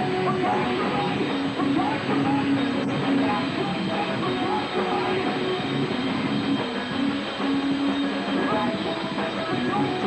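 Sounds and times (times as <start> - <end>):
keyboard notes droning: 0.0 - 10.0
noisy rock band wash: 0.0 - 10.0.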